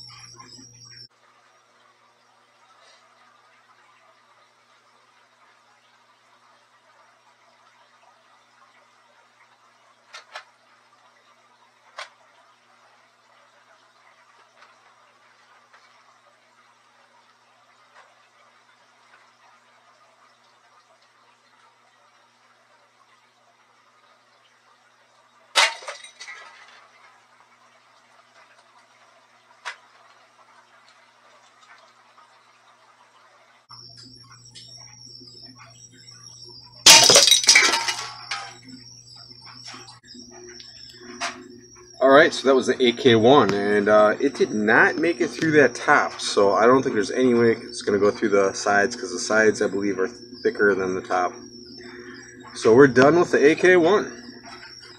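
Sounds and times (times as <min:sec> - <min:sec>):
electrical hum: 0:00.0 - 0:01.1, 0:33.7 - 0:54.9.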